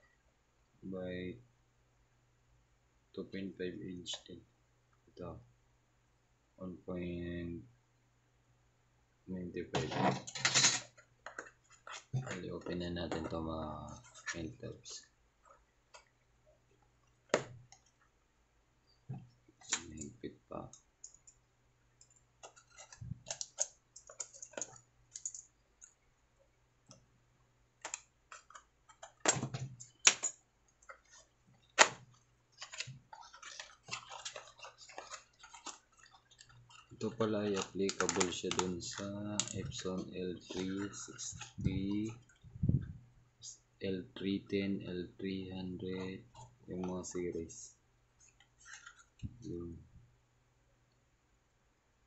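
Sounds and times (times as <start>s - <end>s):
fingers rustling on cardboard: 27.8s - 39.6s
light clicks and taps: 32.6s - 39.8s.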